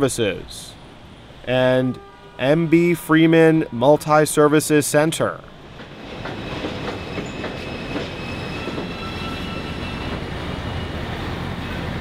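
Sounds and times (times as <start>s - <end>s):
train rumbling past: 5.1s - 12.0s
train wheel clacks: 5.5s - 10.3s.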